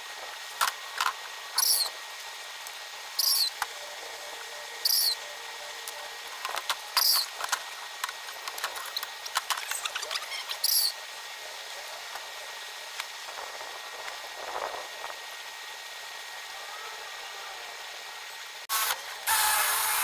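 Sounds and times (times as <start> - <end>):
cordless drill drilling into wood: 18.7 - 20.0.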